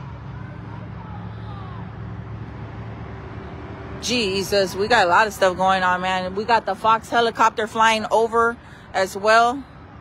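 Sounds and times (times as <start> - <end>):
faint distant voices: 0.0 - 3.6
vehicle engines droning: 0.0 - 10.0.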